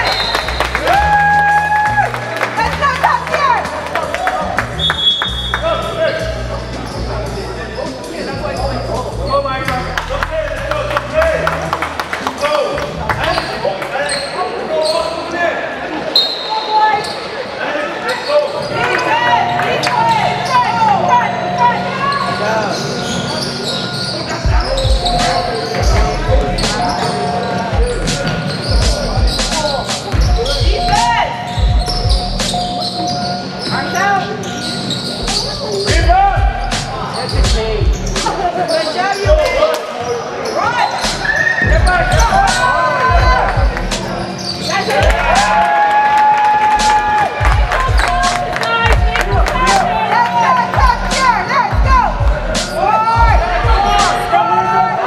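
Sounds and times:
sneakers squeaking: 0.0 - 0.8, 2.7 - 10.0, 12.3 - 15.4, 16.1 - 45.6.

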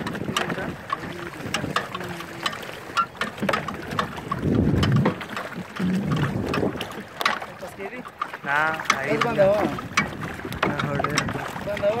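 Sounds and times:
water: 0.0 - 12.0
wind: 0.0 - 12.0
people talking: 0.3 - 2.4, 7.6 - 9.8.

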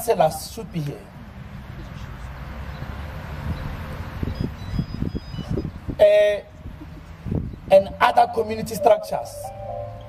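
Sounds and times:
wind buffeting microphone: 3.4 - 7.7.

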